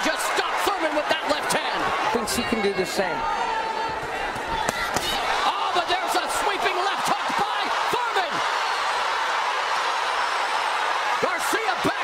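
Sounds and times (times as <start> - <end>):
arena crowd din: 0.0 - 12.0
people shouting: 0.0 - 12.0.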